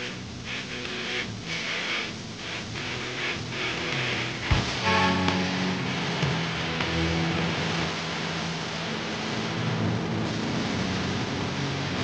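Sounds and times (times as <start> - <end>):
band playing a song: 4.5 - 6.4.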